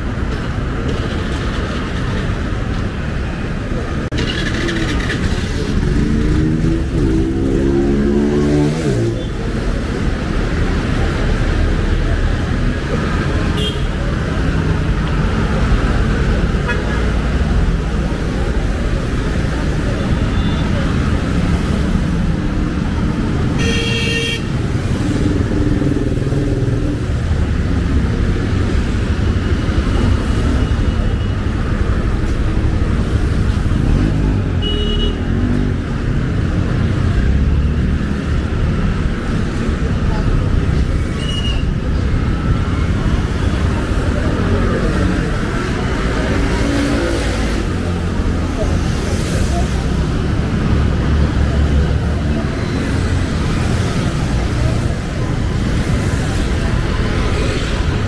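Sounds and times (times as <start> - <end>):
passing traffic rumble: 0.0 - 58.0
vehicle horn: 23.6 - 24.5.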